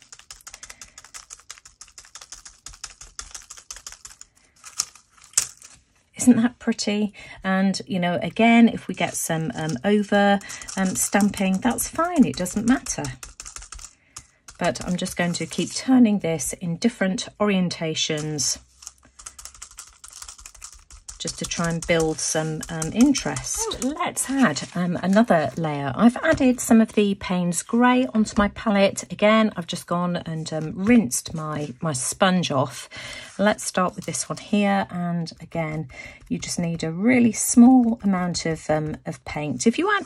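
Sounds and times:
sponge tapping on paper: 0:09.5 - 0:15.7, 0:19.1 - 0:25.6, 0:33.9 - 0:39.5.

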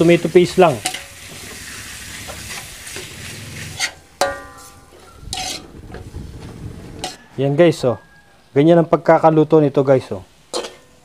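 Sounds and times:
food sizzling in a wok: 0:00.0 - 0:05.6, 0:10.3 - 0:11.0
spoon scraping wok: 0:00.0 - 0:06.2, 0:06.9 - 0:07.3, 0:10.5 - 0:11.0
metal spoon striking wok: 0:00.8 - 0:01.2, 0:03.8 - 0:05.6, 0:10.5 - 0:11.0.

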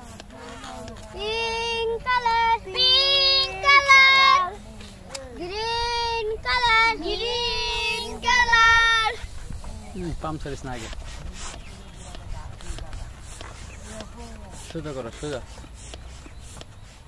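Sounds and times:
child singing high-pitched melody: 0:01.2 - 0:04.6, 0:05.4 - 0:09.2.

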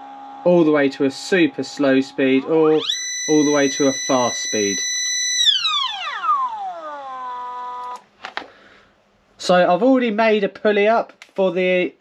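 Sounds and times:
stepper motor whining: 0:00.0 - 0:08.0.

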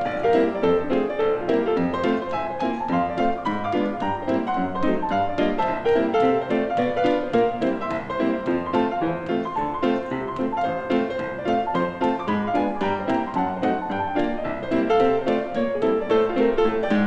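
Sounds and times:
solo piano rag: 0:00.0 - 0:17.0.

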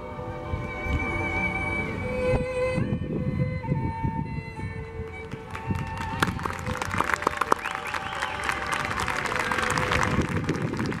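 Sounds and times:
violin music: 0:00.0 - 0:11.0
clapping and applause: 0:05.1 - 0:11.0.

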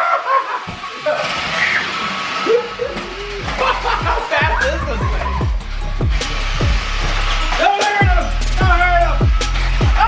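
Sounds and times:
household play noise: 0:00.0 - 0:10.0
background music with low bass: 0:02.6 - 0:10.0.

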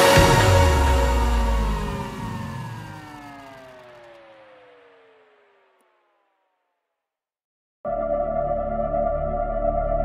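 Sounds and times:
electronic dance music: 0:00.0 - 0:06.4
synth tone gliding downward: 0:00.0 - 0:06.5.

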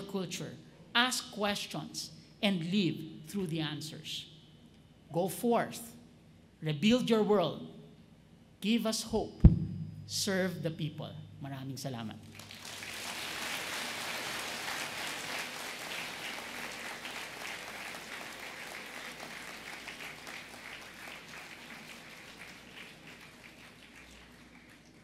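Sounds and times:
audience applauding: 0:12.3 - 0:25.0.

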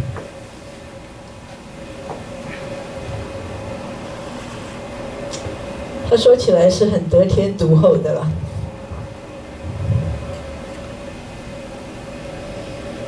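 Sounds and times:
faint mid-pitched hum: 0:00.0 - 0:13.0
low room rumble: 0:00.0 - 0:13.0.

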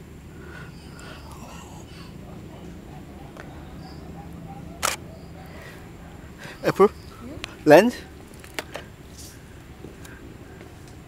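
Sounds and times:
steady low background noise: 0:00.0 - 0:11.0
camera shutter click: 0:04.8 - 0:05.0.

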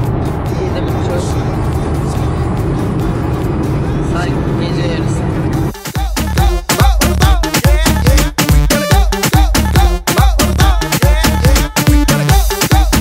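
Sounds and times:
car road and engine noise: 0:00.0 - 0:05.8
dance music with strong beat: 0:00.0 - 0:13.0
music with singing on car stereo: 0:00.0 - 0:13.0.

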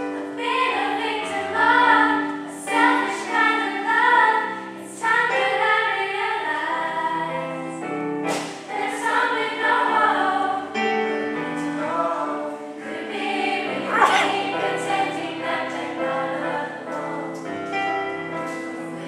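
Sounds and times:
choir singing in harmony: 0:00.0 - 0:19.0
brief sharp hiss: 0:08.3 - 0:08.7.

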